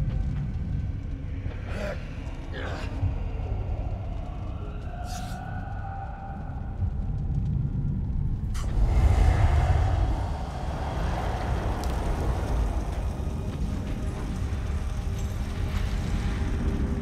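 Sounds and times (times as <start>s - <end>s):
large fire burning: 0.0s - 17.0s
rush of flame: 8.4s - 17.0s.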